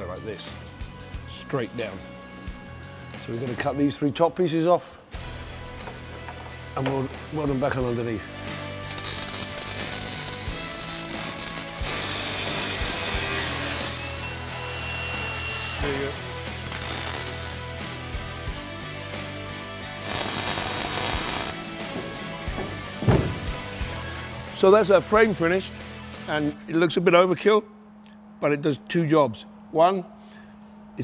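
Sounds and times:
background music: 0.0s - 31.0s
welder crackling: 8.8s - 14.1s, 16.0s - 17.8s, 20.0s - 21.7s.

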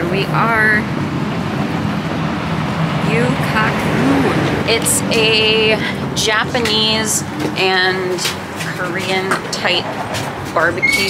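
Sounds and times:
passing traffic rushing: 0.0s - 11.0s.

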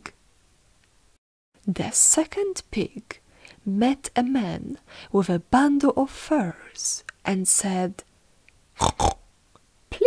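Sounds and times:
pig grunts: 8.8s - 9.2s.

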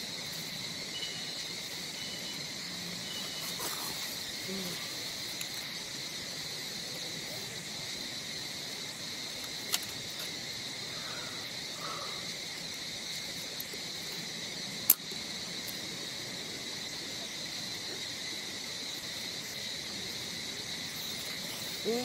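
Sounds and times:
insects droning: 0.0s - 22.0s.

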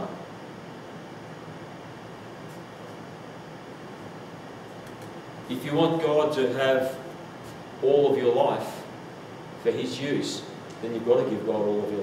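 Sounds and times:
faint low hum: 0.0s - 12.0s
room tone hiss: 0.0s - 12.0s.

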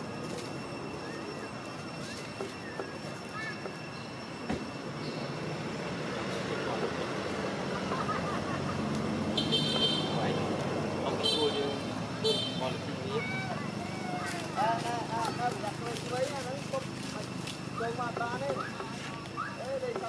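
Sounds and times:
distant voices: 0.0s - 20.0s
traffic hum: 0.0s - 20.0s.

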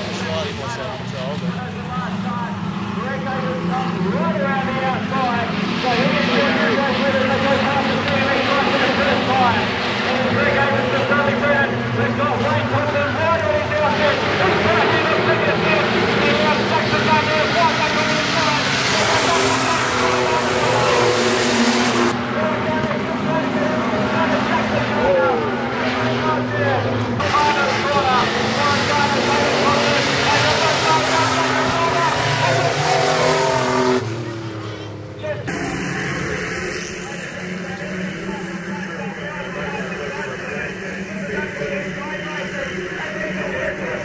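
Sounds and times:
racing car engines: 0.0s - 44.0s.

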